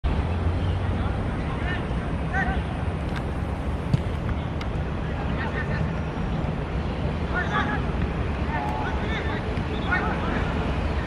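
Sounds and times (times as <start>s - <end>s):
football being kicked: 3.9s - 4.3s.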